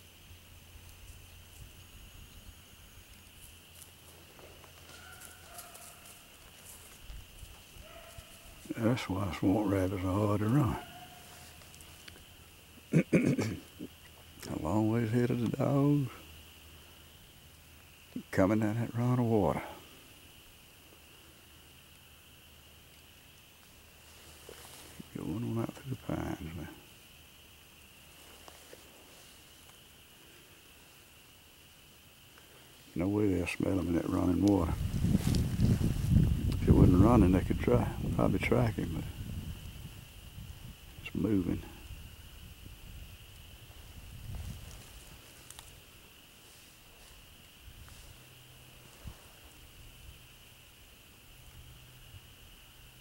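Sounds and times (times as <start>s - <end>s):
faint steady hiss: 0.0s - 53.0s
faint ticks: 0.7s - 8.4s, 10.9s - 12.9s, 26.9s - 30.4s, 34.4s - 36.7s, 43.2s - 49.7s.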